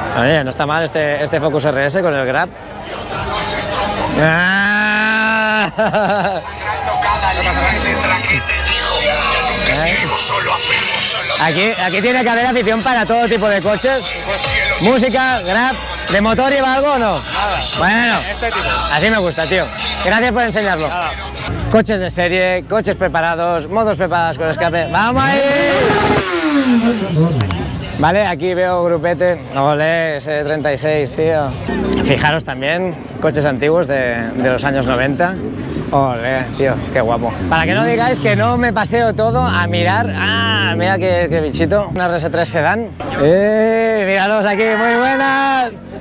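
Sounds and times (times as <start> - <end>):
music with singing voice: 6.9 - 16.4, 17.0 - 21.5
heavy bass from subwoofer: 25.0 - 28.0
motorcycle engine revving past: 25.3 - 27.8.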